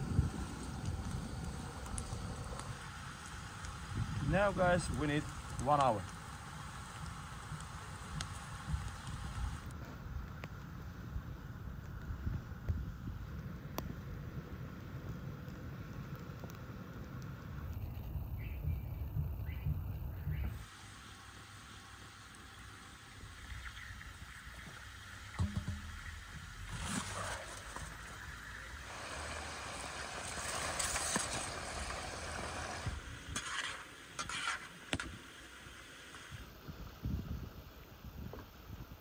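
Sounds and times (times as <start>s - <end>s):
long hiss: 0.0s - 9.8s, 20.4s - 39.0s
wood fire crackling: 0.0s - 39.0s.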